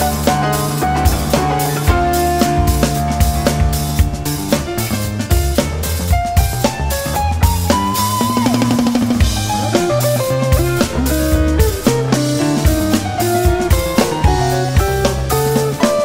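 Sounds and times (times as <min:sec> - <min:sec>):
quick guitar lines: 0:00.0 - 0:06.8
bass guitar: 0:00.0 - 0:16.0
drum kit beat: 0:00.0 - 0:16.0.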